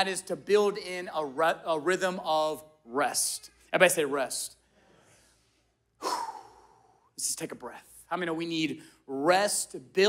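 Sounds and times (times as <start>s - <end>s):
man sighing: 6.0s - 7.1s.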